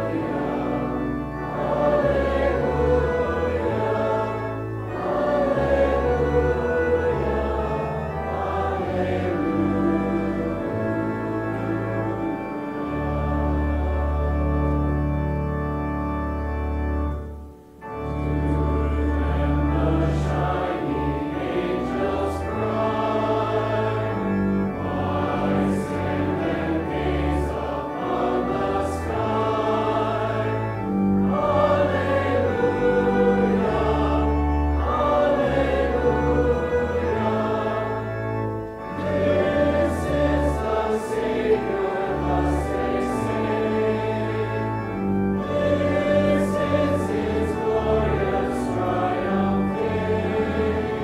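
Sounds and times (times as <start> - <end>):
congregation singing a hymn: 0.0 - 51.0
organ: 0.0 - 51.0.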